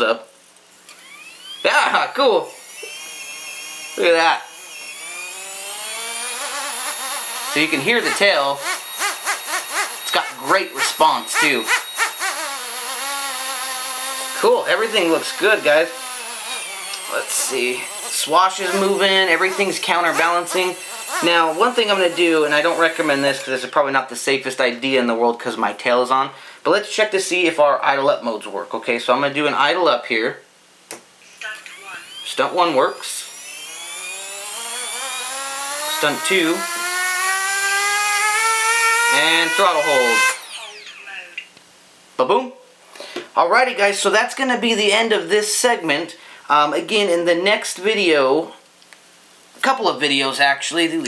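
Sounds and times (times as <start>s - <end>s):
electric motors buzzing whine: 0.4s - 23.9s, 31.4s - 41.6s.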